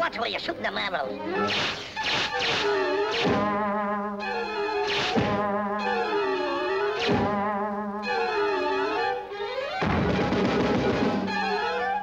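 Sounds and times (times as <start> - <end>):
cartoon music with sliding tones: 1.2 - 9.9, 11.1 - 12.0
arrows whizzing past: 1.4 - 3.3.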